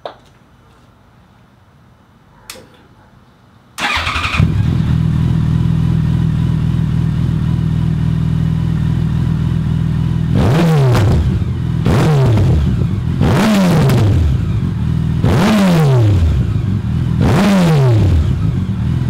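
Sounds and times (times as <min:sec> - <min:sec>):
motorcycle engine idling and revving: 0:03.8 - 0:19.0.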